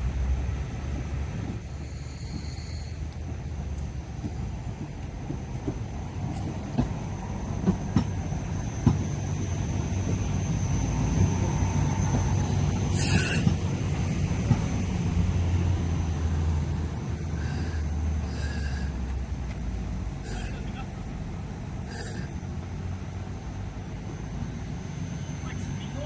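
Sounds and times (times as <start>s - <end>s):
light rail car rumbling past: 0.0s - 26.0s
wheels clicking on track: 0.0s - 26.0s.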